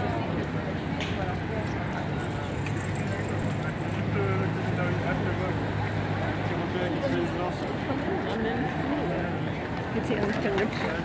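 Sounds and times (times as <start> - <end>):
crowd chatter: 0.0 - 11.0
low rumble of traffic: 0.0 - 11.0.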